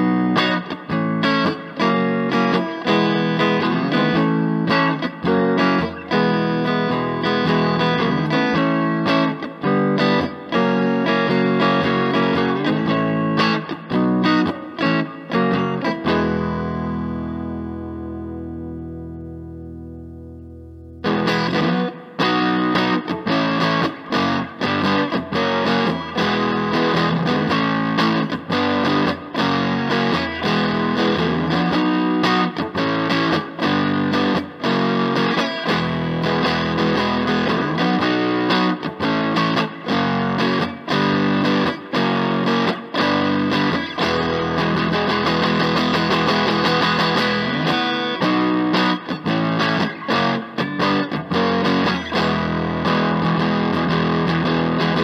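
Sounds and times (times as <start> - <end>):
distorted electric guitar strumming: 0.0 - 55.0.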